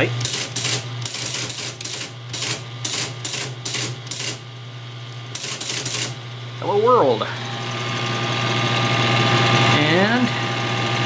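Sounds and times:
motor hum: 0.0s - 11.0s
teletype printing clacks: 0.2s - 4.4s, 5.4s - 6.2s.

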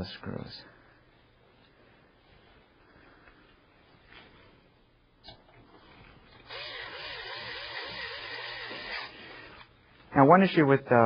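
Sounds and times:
screwdriver grinding whir: 6.4s - 9.7s.

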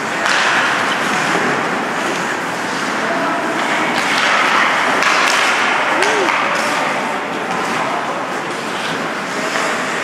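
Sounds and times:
skates scraping ice: 0.0s - 10.0s.

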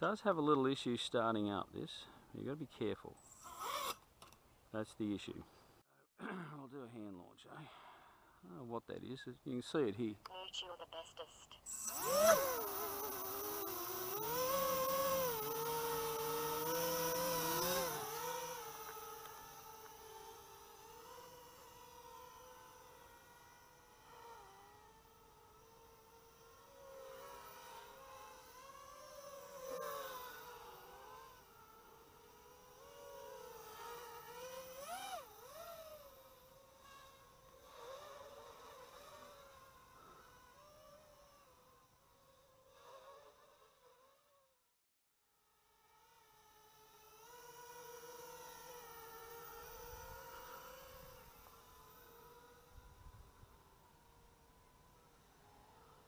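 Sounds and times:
quadcopter motors whining: 3.2s - 4.4s, 11.7s - 44.5s, 45.4s - 56.0s.

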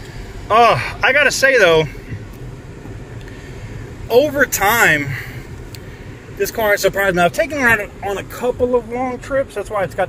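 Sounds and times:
car engine hum from cabin: 0.0s - 10.0s.

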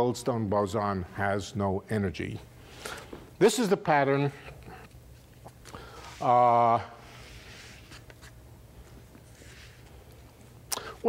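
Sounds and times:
steady low hum: 0.0s - 11.0s
soft rustles: 4.4s - 10.6s.

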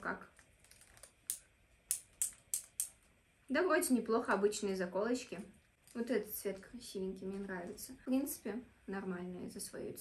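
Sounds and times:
hair clips clicking: 1.3s - 3.0s.

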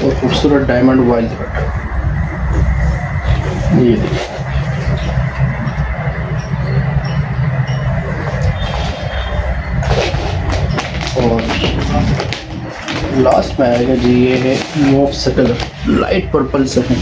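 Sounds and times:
low machine hum: 0.0s - 17.0s
rustling and handling sounds: 9.8s - 15.8s.

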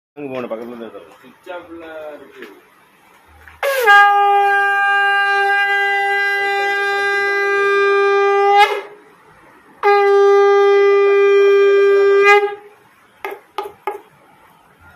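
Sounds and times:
conch shell horn blasts: 3.6s - 9.0s, 9.8s - 12.7s.

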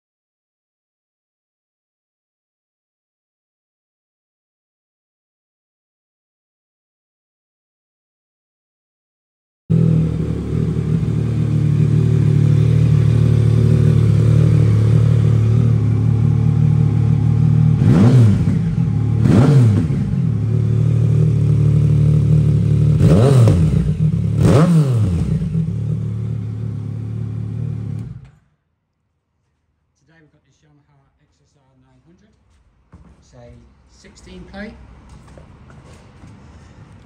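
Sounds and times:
motorcycle engine idling and revving: 9.7s - 28.4s.

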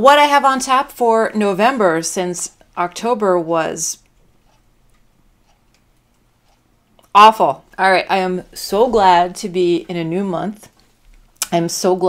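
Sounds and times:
faint irregular ticks: 4.0s - 7.2s.

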